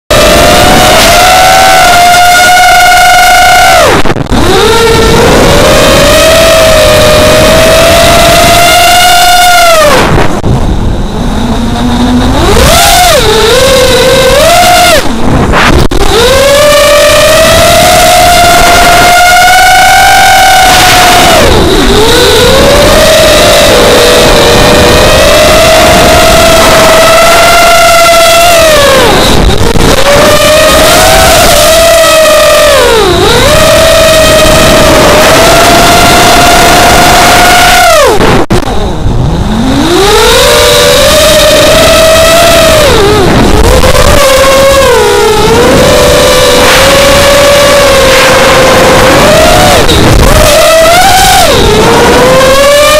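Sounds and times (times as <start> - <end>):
quadcopter motors whining: 0.0 - 52.9.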